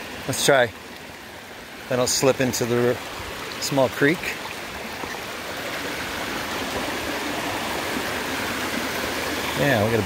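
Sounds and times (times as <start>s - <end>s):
creek water rushing: 0.0s - 10.0s.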